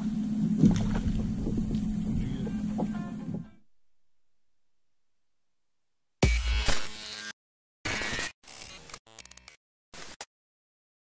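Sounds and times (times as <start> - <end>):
chopped electronic buzzing bursts: 6.2 - 10.3.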